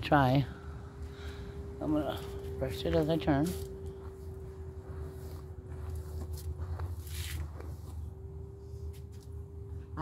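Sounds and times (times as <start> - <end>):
steady low hum: 0.0 - 10.0
hairbrush pulled through hair: 5.1 - 8.0.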